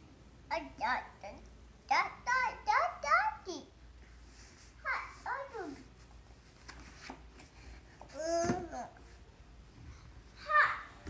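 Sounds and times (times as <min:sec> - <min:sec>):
book pages flipping: 0:05.6 - 0:08.6.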